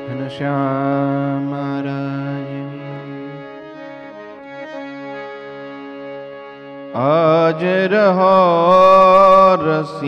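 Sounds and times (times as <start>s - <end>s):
man singing devotional song: 0.0s - 4.4s, 6.7s - 10.0s
harmonium chord: 0.0s - 10.0s.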